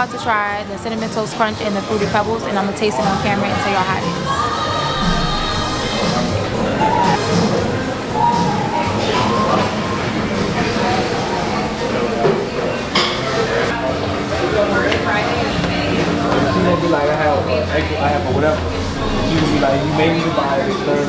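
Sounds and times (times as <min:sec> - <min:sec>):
background music: 0:00.0 - 0:12.9
people talking: 0:00.0 - 0:21.0.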